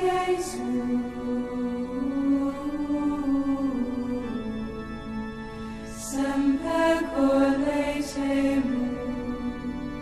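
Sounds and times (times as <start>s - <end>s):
voices singing slow religious chant: 0.0s - 10.0s.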